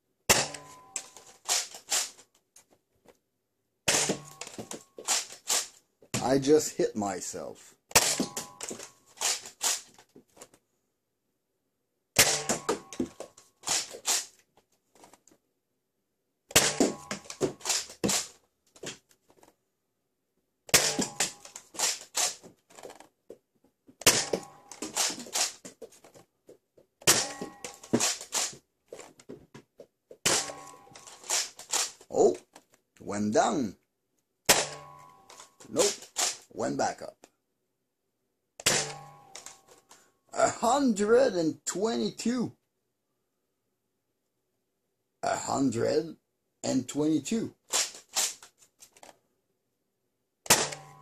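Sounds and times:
toy blaster firing pop: 3.9s - 4.4s, 7.9s - 8.4s, 12.2s - 12.8s, 16.5s - 18.3s, 20.7s - 22.1s, 24.0s - 25.4s, 34.5s - 34.9s, 38.6s - 39.2s, 50.5s - 51.0s.

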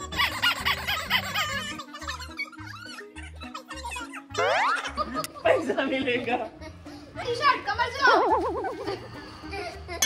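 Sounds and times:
laughter: 0.0s - 5.8s, 8.1s - 10.0s.

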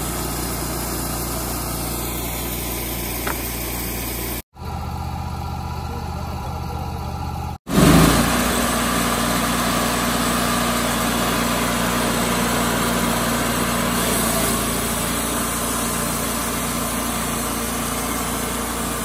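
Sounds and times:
sawmill gasoline engine running: 0.0s - 19.0s.

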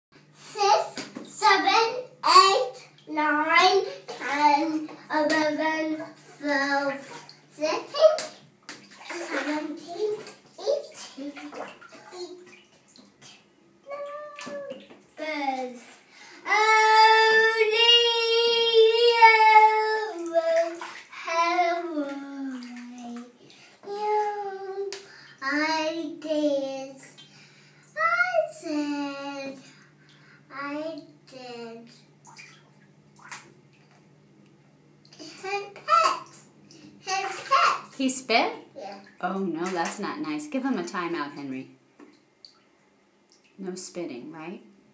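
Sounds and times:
water sloshing and splashing: 0.6s - 31.2s, 32.0s - 34.2s, 35.0s - 43.7s
toddler singing and chattering: 13.9s - 15.9s, 16.5s - 24.9s.

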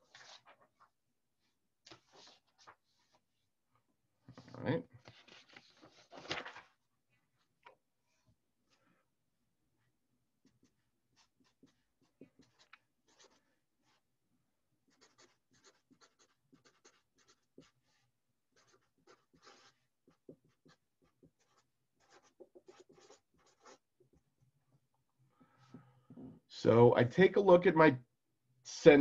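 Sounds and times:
marker writing on paper: 1.9s - 3.2s, 10.4s - 14.0s, 14.8s - 24.3s.

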